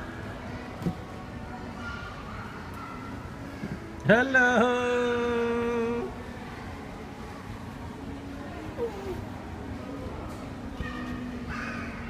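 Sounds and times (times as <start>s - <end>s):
child's high-pitched vocal sounds: 8.6s - 9.4s.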